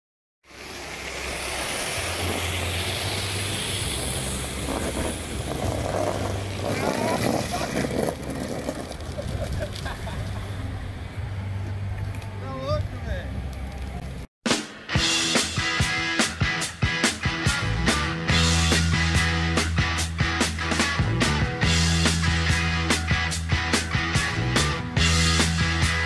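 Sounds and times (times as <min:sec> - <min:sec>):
plastic wheels rumbling on asphalt: 0:02.1 - 0:11.0.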